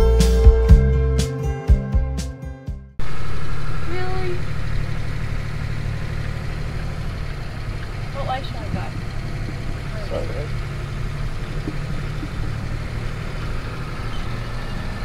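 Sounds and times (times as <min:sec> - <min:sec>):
guitar music: 0:00.0 - 0:15.0
car engine running inside cab: 0:03.0 - 0:15.0.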